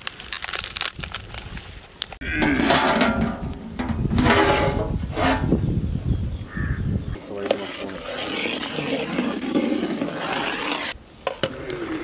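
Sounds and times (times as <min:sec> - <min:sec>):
fire crackling and popping: 0:00.0 - 0:02.2.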